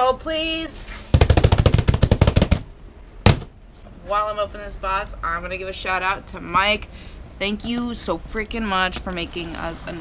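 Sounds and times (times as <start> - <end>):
palms drumming on cardboard box: 1.1 - 3.5.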